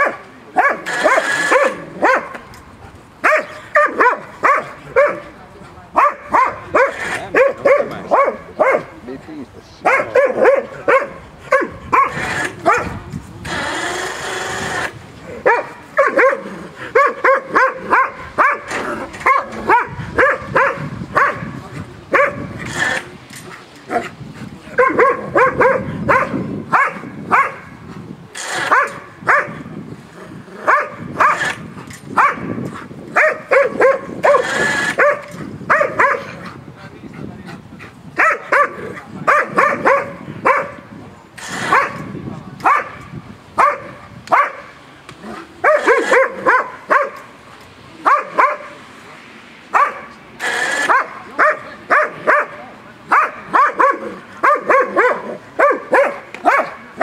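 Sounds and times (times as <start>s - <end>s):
dog barking: 0.0s - 2.4s, 3.2s - 5.3s, 6.0s - 8.9s, 9.8s - 13.0s, 15.4s - 21.5s, 22.1s - 22.5s, 24.8s - 27.7s, 28.6s - 29.6s, 30.6s - 31.5s, 32.2s - 32.6s, 33.2s - 36.4s, 38.2s - 40.8s, 41.6s - 43.0s, 43.6s - 44.7s, 45.6s - 47.2s, 48.0s - 48.8s, 49.7s - 50.1s, 50.7s - 56.8s.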